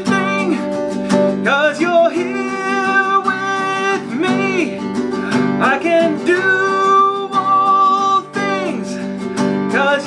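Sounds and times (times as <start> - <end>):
acoustic guitar strumming: 0.0 - 10.0
man singing wordless notes: 0.0 - 10.0.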